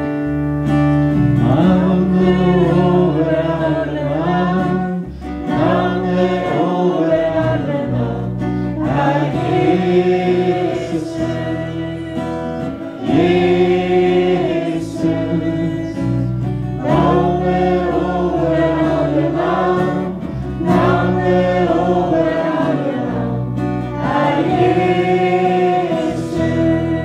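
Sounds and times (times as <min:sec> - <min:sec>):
electric bass: 0:00.0 - 0:27.0
electric guitar: 0:00.0 - 0:27.0
voices singing worship song: 0:01.3 - 0:27.0.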